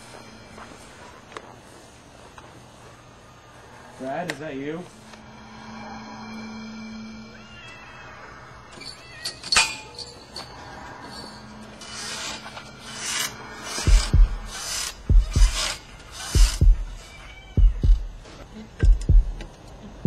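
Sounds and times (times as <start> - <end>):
faint low drone: 0.0 - 4.0, 4.8 - 9.0, 10.4 - 17.0
scraping noises: 0.0 - 9.1, 10.1 - 17.3
deep heartbeat-like thudding: 13.9 - 15.8, 16.4 - 17.0, 17.6 - 18.2, 18.8 - 19.4.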